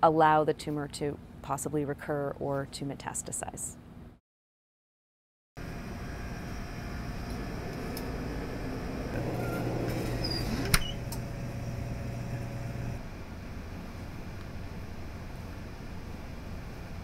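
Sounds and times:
deeper hum: 5.6s - 13.2s
laboratory equipment hum: 5.6s - 17.0s.

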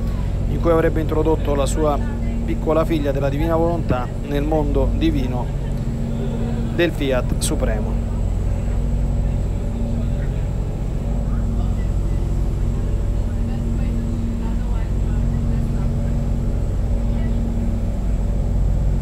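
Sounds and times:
low mechanical drone: 0.0s - 19.0s.

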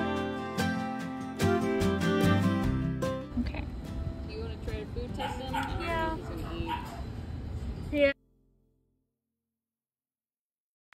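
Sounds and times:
dog yip: 5.2s - 7.1s.

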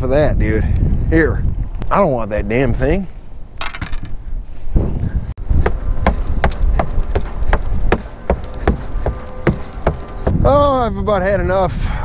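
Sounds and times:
footsteps on wooden boards: 4.8s - 10.3s.

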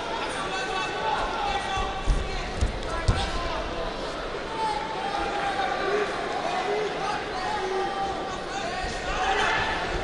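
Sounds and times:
voices shouting in large hall: 0.0s - 10.0s.

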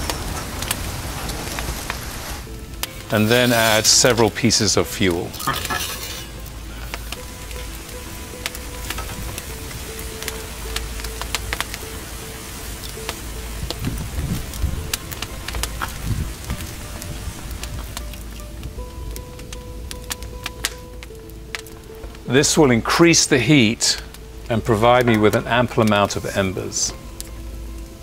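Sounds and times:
soft background music: 0.0s - 28.0s
wood fire crackling and popping: 0.0s - 28.0s.

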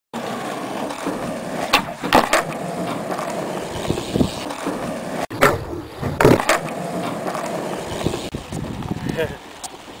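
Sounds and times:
skateboard wheels rolling on asphalt: 0.1s - 10.0s
skateboard wooden clacks: 0.8s - 8.6s.

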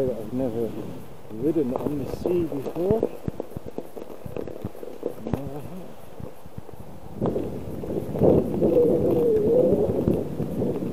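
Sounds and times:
bicycle rattling over ice: 0.2s - 10.9s.

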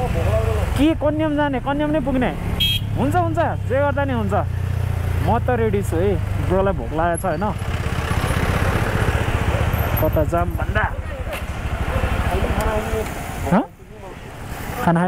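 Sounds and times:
motorcycle engine running: 0.0s - 14.0s.

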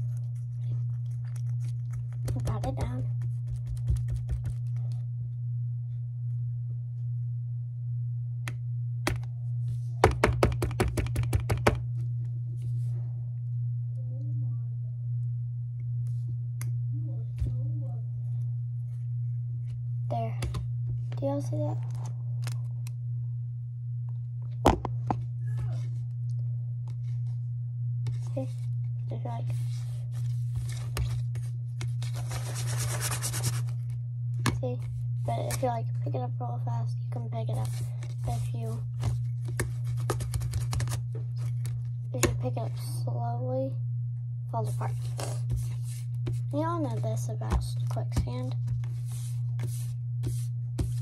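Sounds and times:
steady low hum: 0.0s - 51.0s
taps and knocks on plastic mold: 10.0s - 11.8s.

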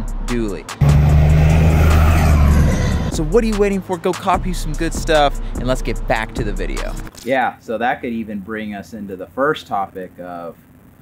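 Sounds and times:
pickup truck engine and exhaust drone: 0.0s - 7.1s
road noise: 0.0s - 7.1s.

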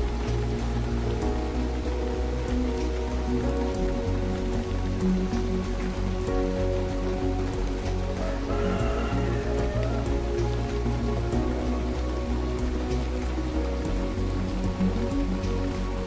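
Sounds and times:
close raindrop hits: 0.0s - 16.0s
slow calm music: 0.0s - 16.0s
steady rain: 0.0s - 16.0s.

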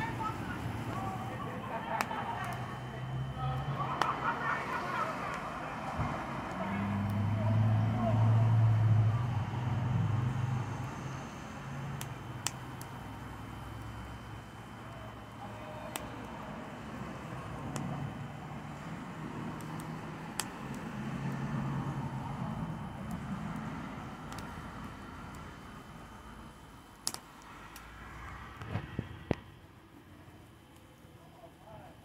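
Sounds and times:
bonfire crackling: 0.0s - 32.0s
fire popping: 0.0s - 32.0s.

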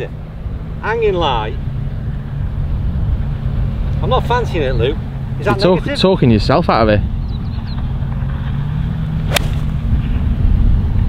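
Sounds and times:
golf club striking ball: 9.2s - 10.0s.

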